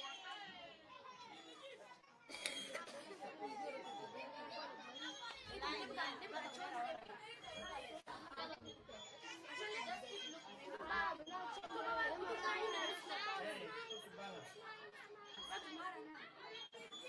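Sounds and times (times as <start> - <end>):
chatter of many voices: 0.0 - 17.0.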